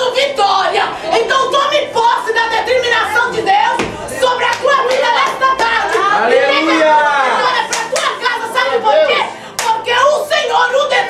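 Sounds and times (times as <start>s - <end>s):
sharp hand claps: 3.8s - 6.0s, 7.6s - 8.2s, 9.6s - 9.8s.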